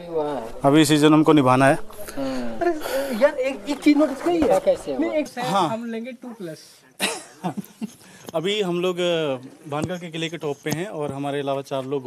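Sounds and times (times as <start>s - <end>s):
man coughing: 7.0s - 7.5s.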